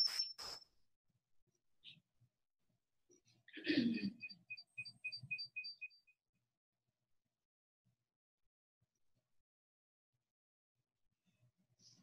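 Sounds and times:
short high squeaks: 0:00.0 - 0:00.6
person clearing throat: 0:03.6 - 0:04.2.

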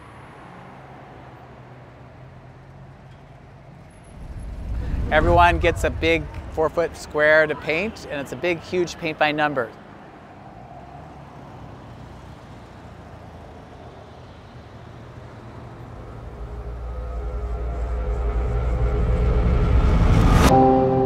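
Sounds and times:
low rumbling riser drone: 0:04.0 - 0:08.2, 0:15.3 - 0:21.0.

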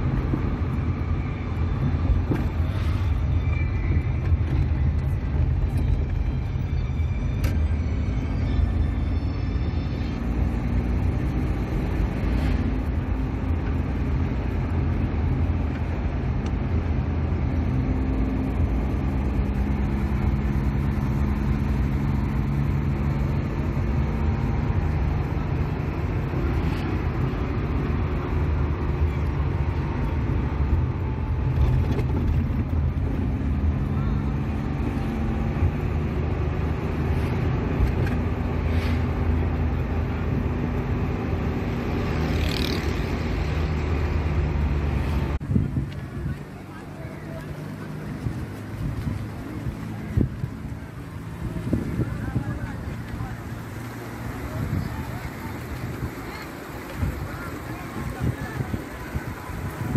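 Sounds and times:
vehicle engine from inside cabin: 0:00.0 - 0:55.6
road noise: 0:00.0 - 0:59.9.

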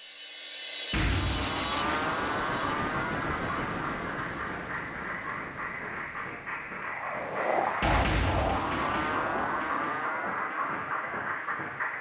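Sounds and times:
filtered noisy trance texture: 0:01.0 - 0:12.0.

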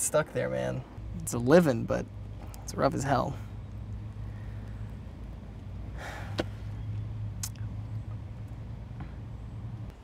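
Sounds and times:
steady low hum: 0:00.0 - 0:10.0
person inhaling: 0:06.0 - 0:06.6.

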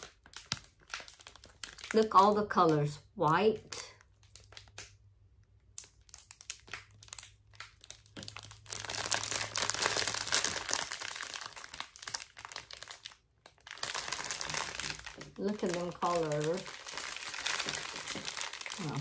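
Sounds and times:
plastic packaging crinkling: 0:00.0 - 0:02.9, 0:03.7 - 0:19.0.

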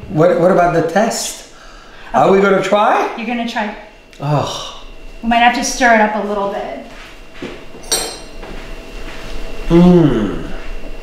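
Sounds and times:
spoon clinking against glass mug: 0:07.8 - 0:08.4.

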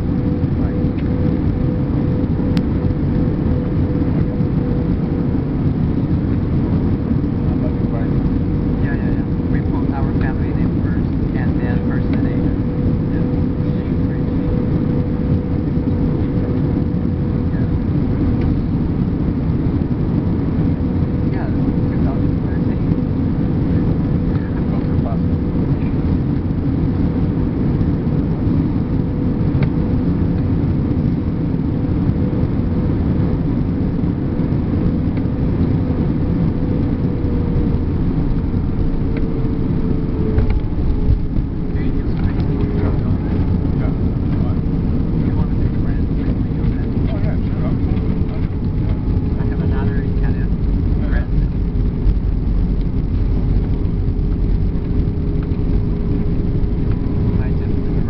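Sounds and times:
jet engines and airflow rumble: 0:00.0 - 0:58.0.

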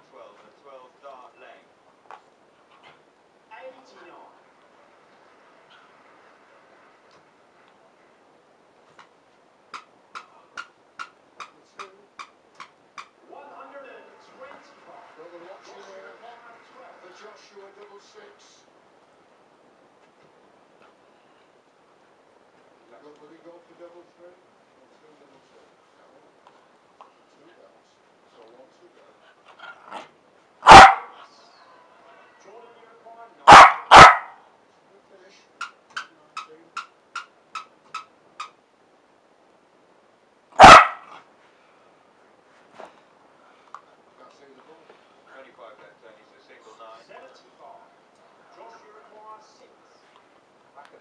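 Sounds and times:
puppy barking: 0:29.9 - 0:31.2, 0:33.5 - 0:34.4, 0:40.6 - 0:41.2.

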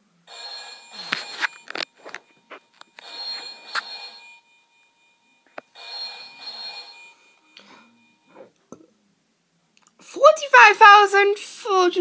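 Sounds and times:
faint electronic game sounds: 0:00.1 - 0:08.7
telephone ring sound effect: 0:00.2 - 0:08.4.

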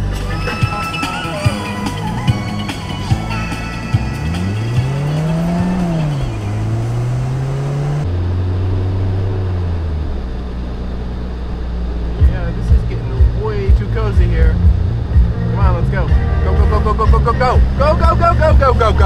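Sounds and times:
person singing: 0:00.0 - 0:06.7
song with thumping beat: 0:00.0 - 0:06.8, 0:12.2 - 0:19.0
truck engine accelerating: 0:00.0 - 0:19.0.

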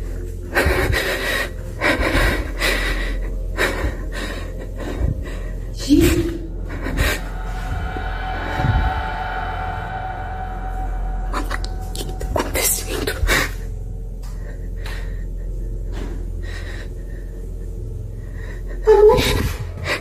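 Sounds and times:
steady droning tones: 0:00.0 - 0:20.0.

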